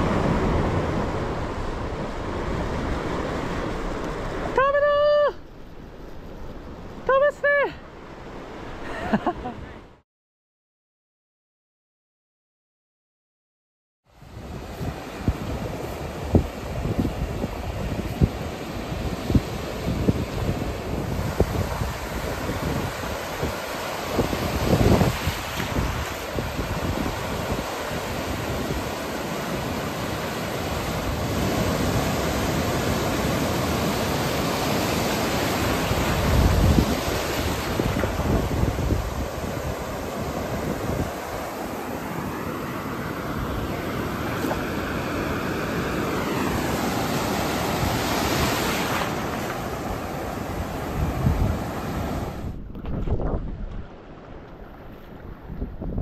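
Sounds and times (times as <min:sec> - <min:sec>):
surf breaking on beach: 0:00.0 - 0:09.7, 0:14.2 - 0:56.0
wind buffeting microphone: 0:14.2 - 0:42.0, 0:46.6 - 0:56.0.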